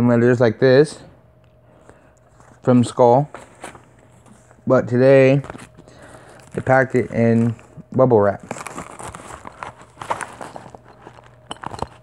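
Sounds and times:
bubble-wrap mailer crackling: 5.2 - 12.0.

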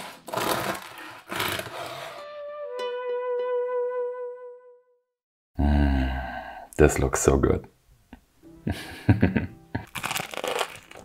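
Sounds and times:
bread knife sawing crust: 0.0 - 2.2
held musical note: 2.2 - 5.0.

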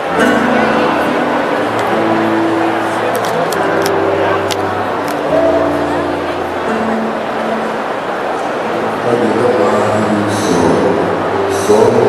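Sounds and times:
nylon-string acoustic guitar: 0.0 - 12.0
man singing low notes: 8.7 - 12.0.

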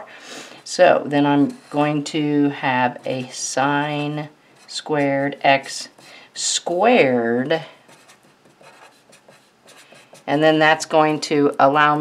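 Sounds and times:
marker scratching on paper: 7.8 - 10.4.

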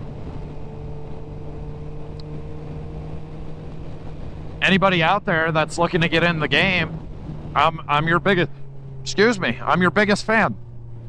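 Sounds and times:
wind noise: 0.0 - 9.6
motorcycle engine humming: 0.0 - 11.0.

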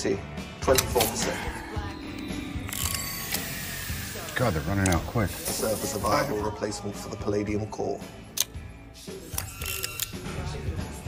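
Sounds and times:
mechanism clicking and whirring: 2.2 - 5.2.

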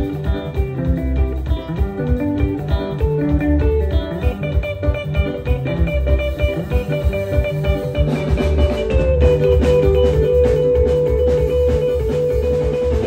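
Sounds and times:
bass guitar: 0.0 - 13.0
drum kit beat: 0.0 - 13.0
electric guitar picking notes: 0.0 - 13.0.

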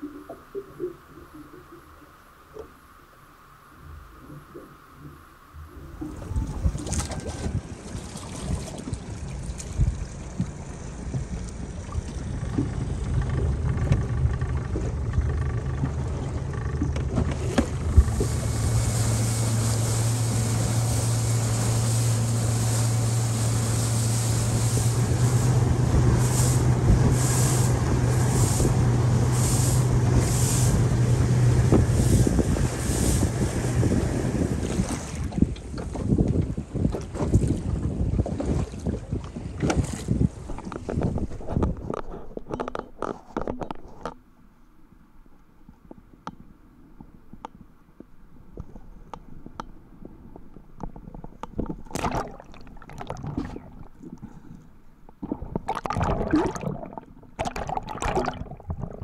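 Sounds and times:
water rushing past hull: 0.0 - 42.2, 49.9 - 59.0
wind: 0.0 - 59.0
outboard motor running: 5.8 - 43.6
knocks and splashes: 5.9 - 43.8, 50.4 - 54.3, 55.1 - 59.0.

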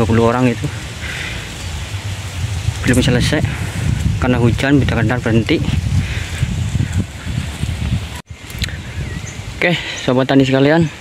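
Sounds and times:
wind rumble on microphone: 0.0 - 11.0
microphone handling noise: 0.8 - 9.6.

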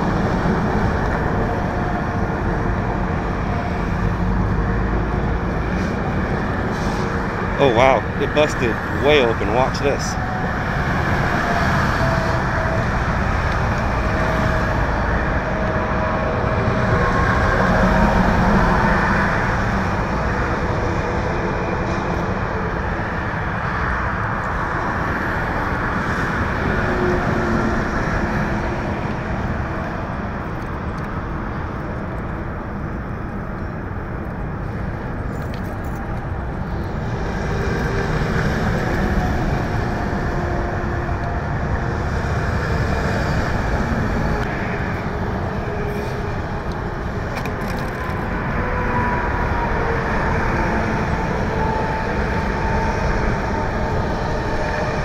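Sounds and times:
road traffic noise: 0.0 - 55.0
vehicle engines rumbling: 0.0 - 55.0.

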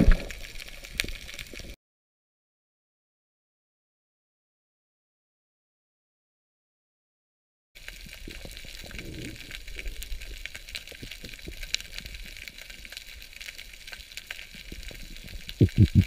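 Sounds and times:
underwater crackling hiss: 7.8 - 16.0
low rumble: 15.6 - 16.0.

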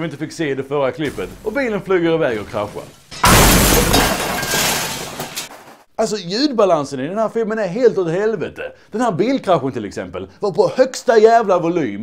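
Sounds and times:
debris clinking: 1.1 - 5.8
glass breaking: 1.1 - 5.8
car crash: 1.1 - 5.9.

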